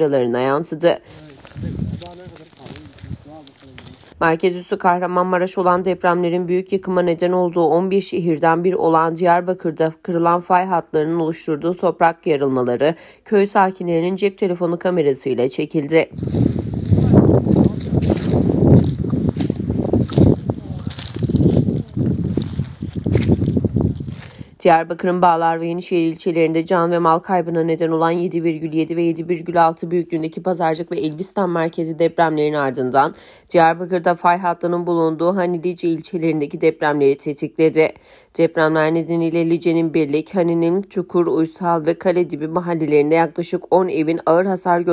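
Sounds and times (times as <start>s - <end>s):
faint voices talking: 16.9s - 22.2s.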